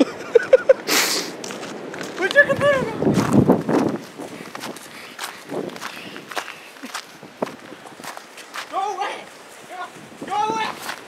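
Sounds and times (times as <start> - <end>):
running footsteps crunching snow: 1.2 - 11.0
person shouting: 10.3 - 10.8.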